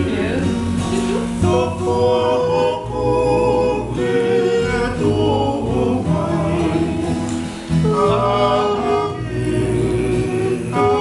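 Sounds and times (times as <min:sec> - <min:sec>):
guitar strumming: 0:00.0 - 0:11.0
men singing in harmony: 0:00.0 - 0:11.0.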